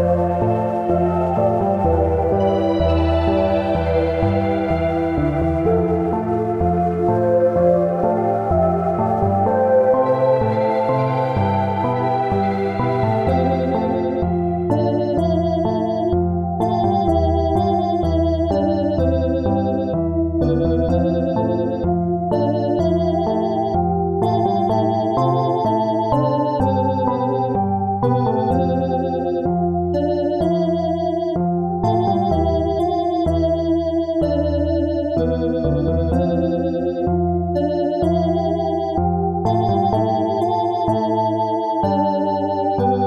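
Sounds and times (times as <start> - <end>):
held low bass: 0.0 - 43.0
synth music with organ chords: 0.0 - 43.0.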